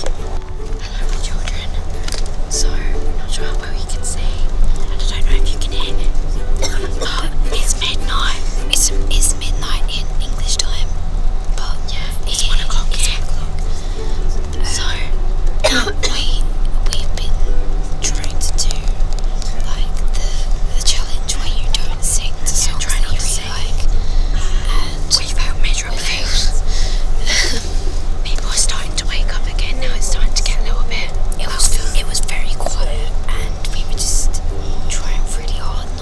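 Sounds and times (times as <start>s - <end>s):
coach engine drone: 0.0s - 36.0s
tyres on the road: 0.0s - 36.0s
person whispering: 0.7s - 10.9s, 11.6s - 15.2s, 18.0s - 36.0s.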